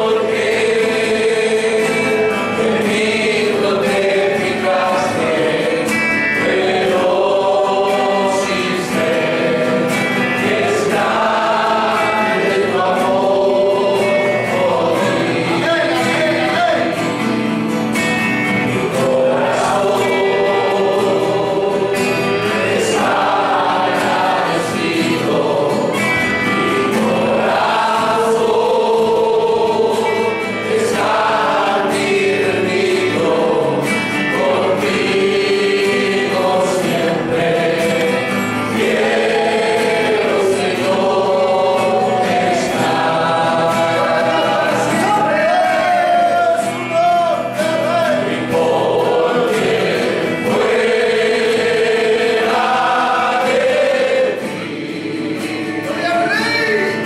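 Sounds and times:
congregation singing a hymn: 0:00.0 - 0:57.0
strummed guitars: 0:00.0 - 0:57.0.

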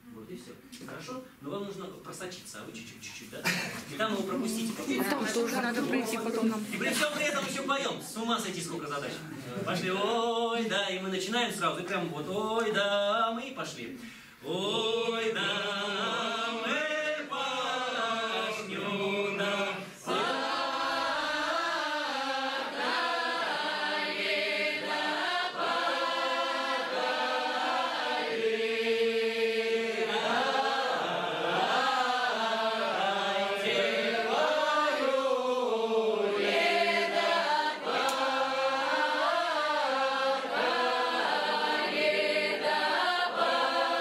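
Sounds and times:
group singing unaccompanied: 0:09.4 - 0:11.2, 0:14.4 - 0:44.0.

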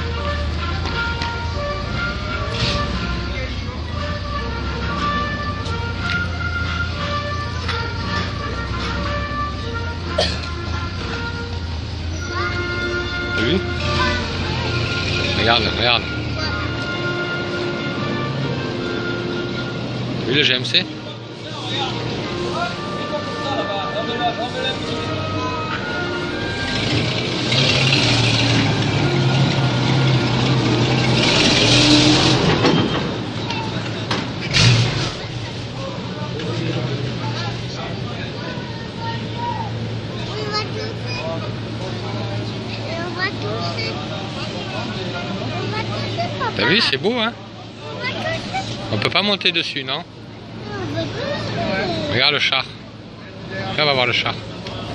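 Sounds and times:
music playing: 0:00.0 - 0:30.5
truck engine rumbling: 0:00.0 - 0:54.9
voices of onlookers: 0:00.0 - 0:54.9.

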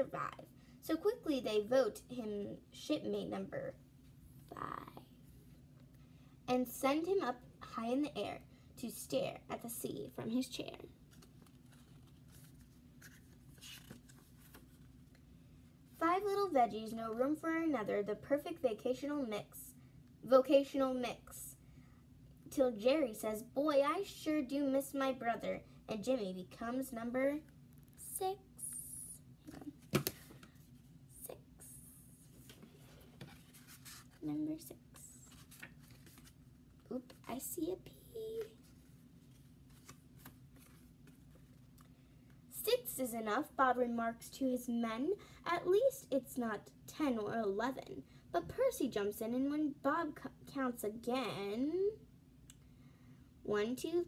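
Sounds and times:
low room hum: 0:00.0 - 0:54.0
book pages rustling: 0:11.0 - 0:15.2, 0:29.5 - 0:30.9, 0:32.2 - 0:34.3, 0:35.1 - 0:37.5, 0:38.3 - 0:41.9.

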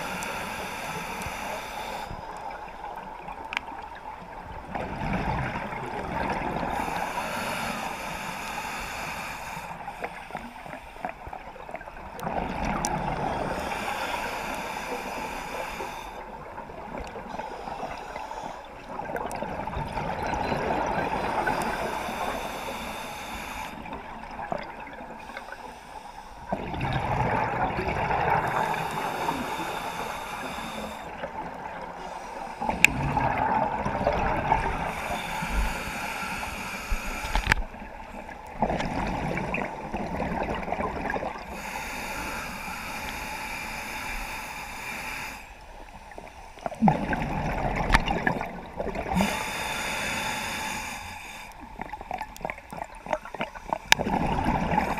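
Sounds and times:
scuba regulator breathing: 0:00.0 - 0:02.6, 0:06.1 - 0:11.4, 0:13.1 - 0:19.0, 0:20.8 - 0:24.2, 0:25.1 - 0:26.6, 0:28.2 - 0:38.4, 0:41.4 - 0:46.8, 0:49.0 - 0:52.0
exhaled bubbles gurgling: 0:00.0 - 0:08.0, 0:10.4 - 0:25.3, 0:26.5 - 0:44.5, 0:46.6 - 0:54.9.

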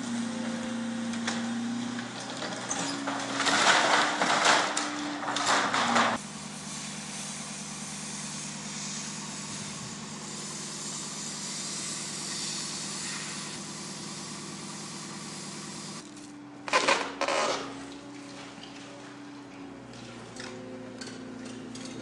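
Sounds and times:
excavator diesel engine running: 0:00.0 - 0:16.7, 0:17.3 - 0:22.0
loud crunching crash: 0:02.4 - 0:06.2.

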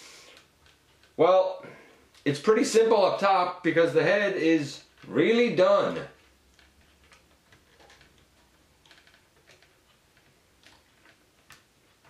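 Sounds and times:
plastic toy joints clicking: 0:05.9 - 0:12.0.

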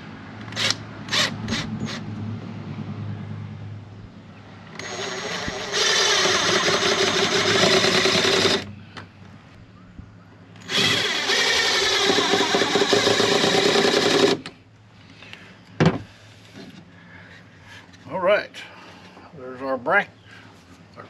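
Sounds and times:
cordless drill into wood: 0:00.6 - 0:02.0, 0:04.8 - 0:08.7, 0:10.6 - 0:14.5.

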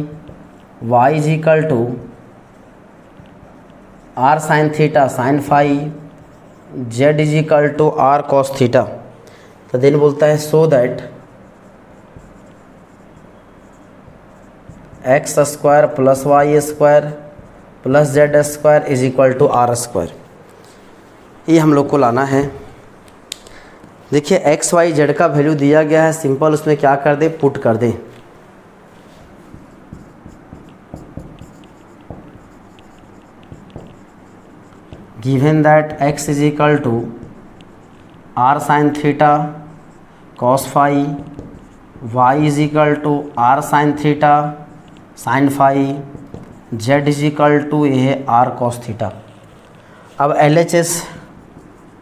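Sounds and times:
marker writing on whiteboard: 0:00.0 - 0:52.0.

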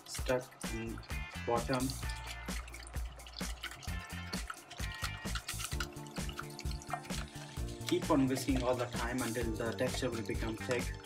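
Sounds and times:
background music: 0:00.0 - 0:11.0
whisk beating in steel saucepan: 0:00.0 - 0:11.0.

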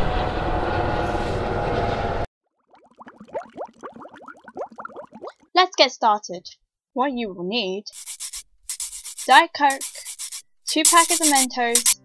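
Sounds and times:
cartoon bubbling bloops: 0:02.6 - 0:05.5.

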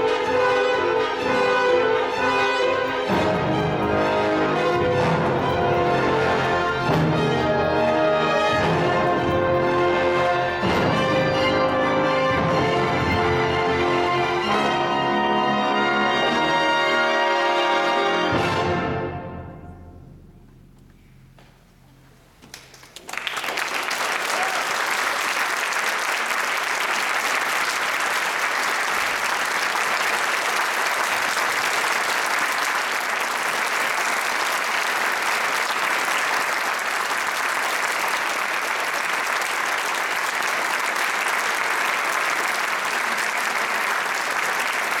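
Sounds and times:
orchestral music: 0:00.0 - 0:20.7
audience applause: 0:22.5 - 0:45.0.

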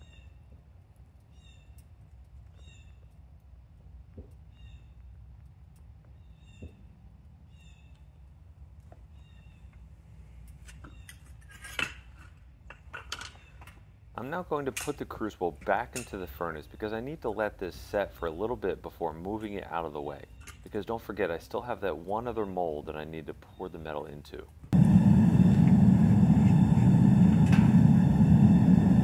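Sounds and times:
small bird chirping: 0:00.0 - 0:00.4, 0:01.2 - 0:01.9, 0:02.5 - 0:03.2, 0:04.4 - 0:05.1, 0:06.1 - 0:06.9, 0:07.5 - 0:08.3, 0:09.1 - 0:09.8
low steady rumble: 0:00.0 - 0:11.2, 0:13.9 - 0:29.0.

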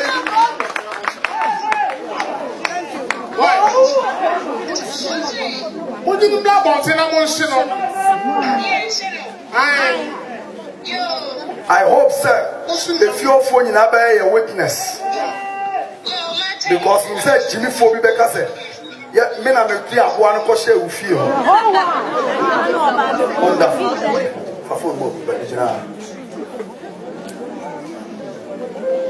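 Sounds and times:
crowd chatter: 0:00.0 - 0:29.0
people talking: 0:02.2 - 0:29.0.

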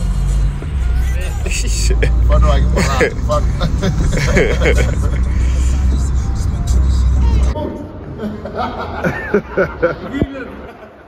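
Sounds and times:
car driving rumble inside cabin: 0:00.0 - 0:07.6
men's voices: 0:00.6 - 0:10.9.

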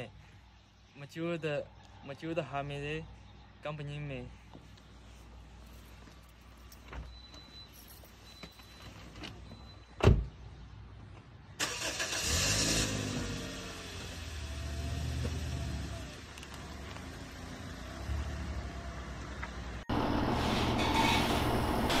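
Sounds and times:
car engine starting and running: 0:11.6 - 0:22.0.

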